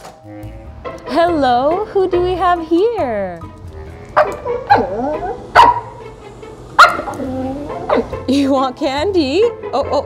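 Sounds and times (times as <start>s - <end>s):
dog vocal calls: 3.8s - 6.0s
dog howling woo: 4.4s - 5.6s
dog barks and yips: 5.6s - 5.9s, 6.8s - 7.1s.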